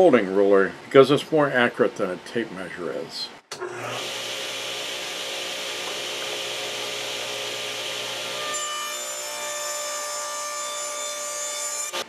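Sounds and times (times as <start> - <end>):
table saw cutting plastic: 3.5 - 12.0.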